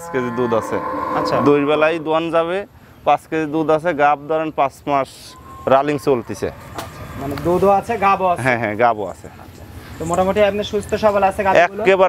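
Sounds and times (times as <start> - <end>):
cow mooing: 0.0 - 2.6
men talking: 0.0 - 6.6, 7.2 - 12.0.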